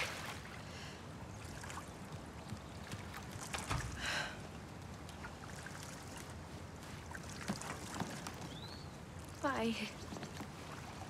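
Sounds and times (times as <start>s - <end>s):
water splash: 0.0s - 0.6s
pool water lapping: 0.0s - 8.4s, 9.1s - 11.0s.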